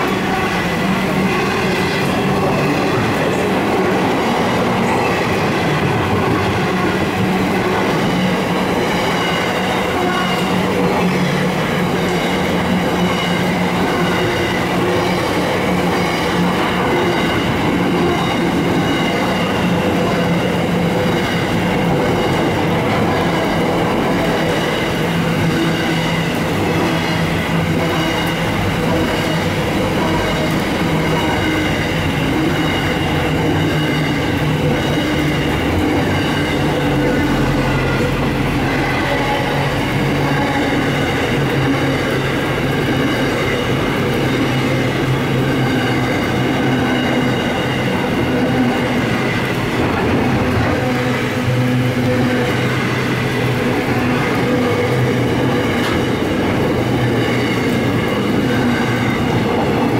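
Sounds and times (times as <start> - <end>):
train wheels rumbling on rail: 0.0 - 59.9.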